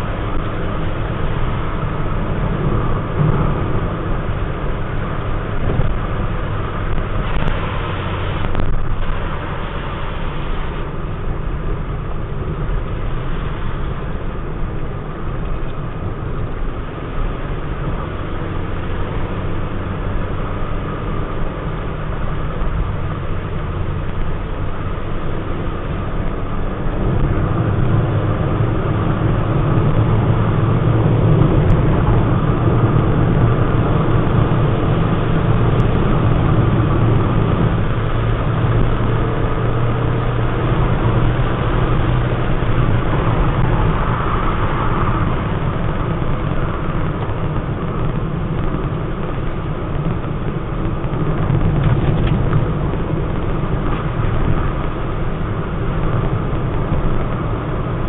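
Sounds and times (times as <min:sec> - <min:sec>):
car engine hum: 0:00.0 - 0:58.0
road noise: 0:00.0 - 0:58.0.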